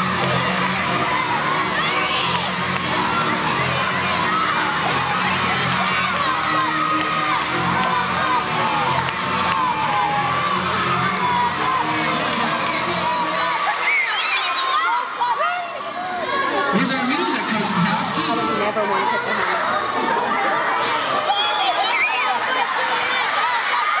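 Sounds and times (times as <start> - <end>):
music playing: 0.0 - 14.2, 16.6 - 19.6
children shouting and cheering: 0.0 - 24.0.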